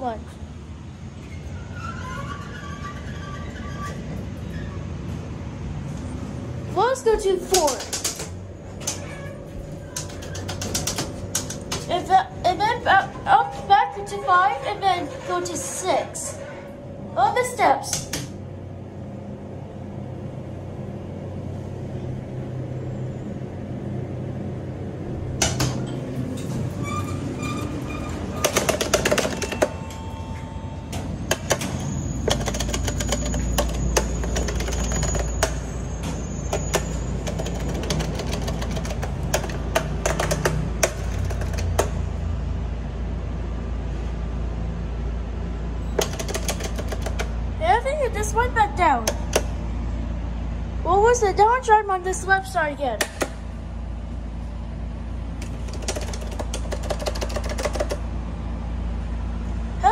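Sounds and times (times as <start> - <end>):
elevator humming: 0.0 - 52.8
parking garage rumble: 0.0 - 59.9
elevator clattering and knocking: 7.1 - 15.7, 25.3 - 30.1, 36.5 - 42.0
scattered clicks and knocks: 7.2 - 12.1, 17.9 - 18.4, 25.4 - 26.8, 27.8 - 30.0, 30.9 - 42.1, 45.9 - 47.4, 49.0 - 49.6, 53.0 - 53.4, 55.4 - 58.1.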